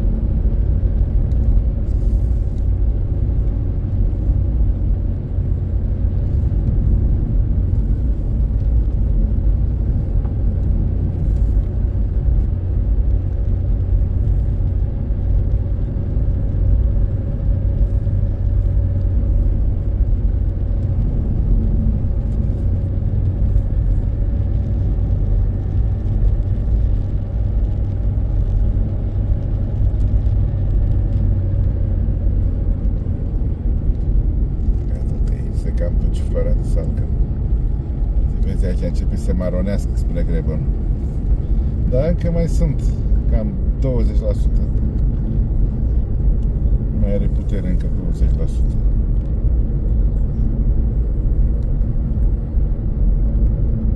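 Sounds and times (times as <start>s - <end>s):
car engine rumble: 0.0s - 53.9s
tyre noise on road: 0.0s - 53.9s.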